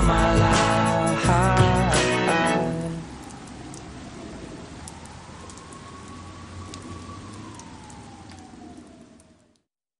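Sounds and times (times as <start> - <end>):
siren winding down: 2.3 - 9.5.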